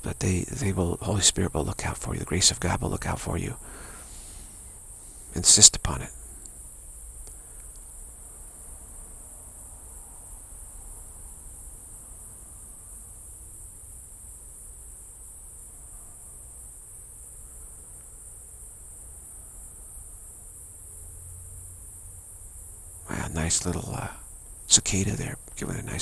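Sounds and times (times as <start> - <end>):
cicada buzzing: 0.0 - 26.0.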